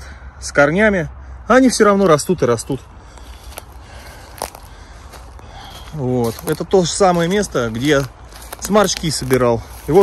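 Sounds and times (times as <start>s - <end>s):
footsteps crackling on leaf litter: 2.6s - 10.0s.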